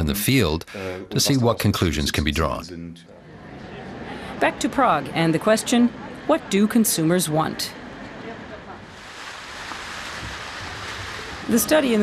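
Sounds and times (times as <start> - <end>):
fountain water splashing: 8.8 - 12.0.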